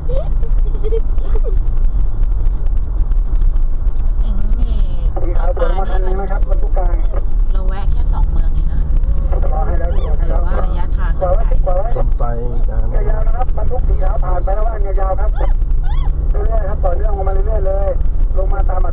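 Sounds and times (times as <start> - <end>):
vehicle engine and tyres rumbling: 0.0 - 18.9
man talking: 5.1 - 7.2, 9.3 - 15.5, 16.3 - 18.9.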